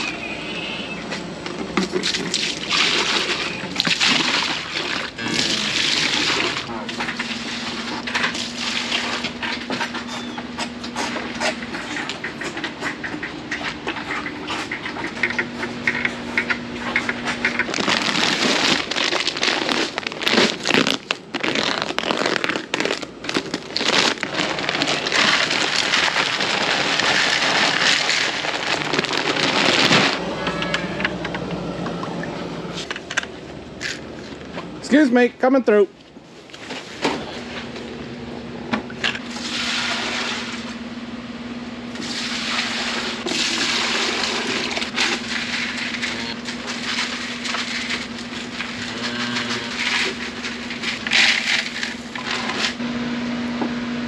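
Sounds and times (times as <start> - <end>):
feed bag rustling: 17.6 - 30.2, 43.4 - 52.8.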